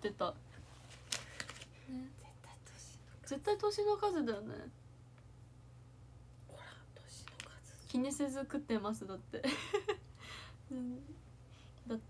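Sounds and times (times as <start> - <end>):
woman speaking: 0.0 - 0.4, 1.9 - 4.8, 6.5 - 9.6
low steady hum: 0.0 - 12.0
woman whispering: 1.9 - 3.2, 6.5 - 8.0.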